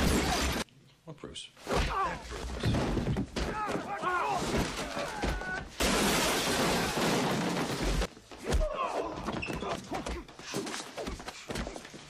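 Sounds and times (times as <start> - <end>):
glass and crockery shattering: 5.8 - 8.1.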